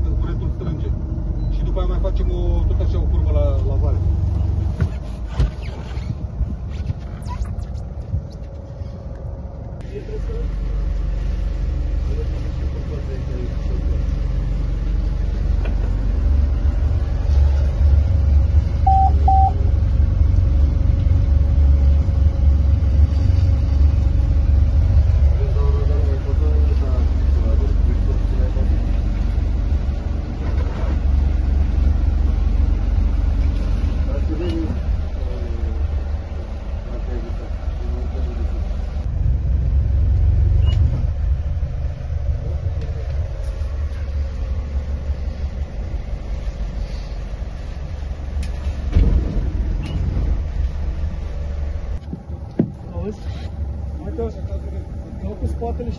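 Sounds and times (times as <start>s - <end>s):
boat engine rumbling: 0.0s - 55.9s
muffled voices: 25.2s - 29.4s.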